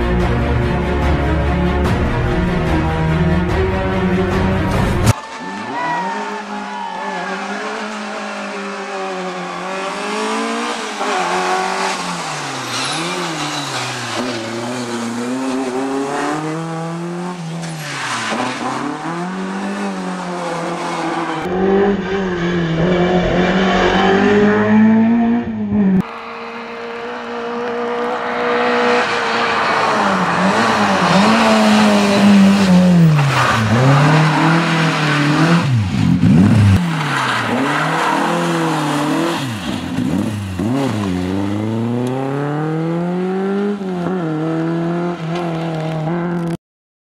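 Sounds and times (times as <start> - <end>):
rally car engine revving: 0.6 - 46.6.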